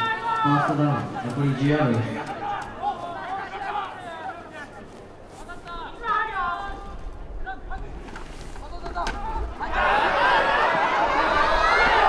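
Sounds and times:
distant shouted voices: 0.0s - 12.0s.

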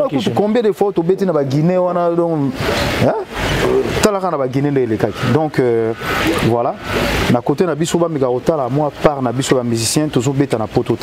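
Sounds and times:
man talking: 0.0s - 11.0s
short rush of noise: 2.5s - 4.2s.

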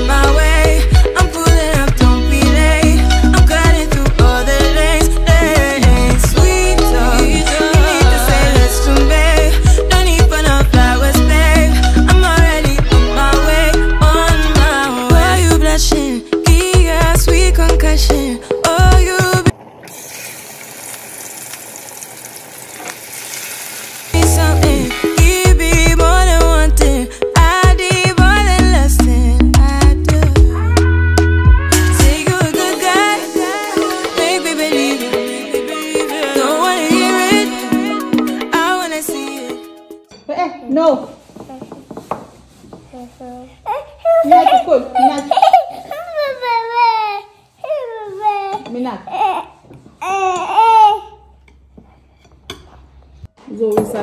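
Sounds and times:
pork chops sizzling in hot oil: 19.9s - 24.2s.

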